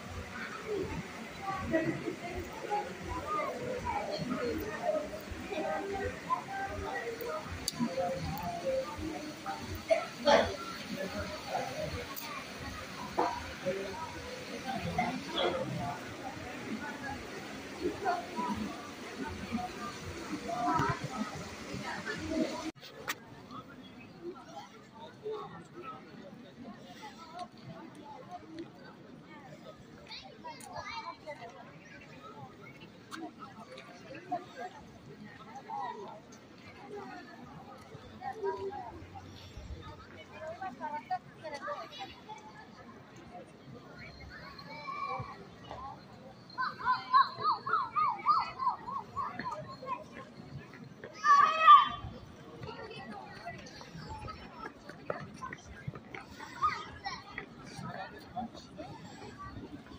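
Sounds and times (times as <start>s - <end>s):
chatter of people: 0.0s - 59.9s
children and adults talking: 0.0s - 59.9s.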